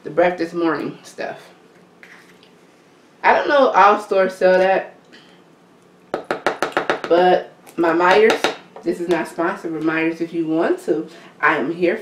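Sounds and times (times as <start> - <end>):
spice shaker tapping: 6.1 - 7.2.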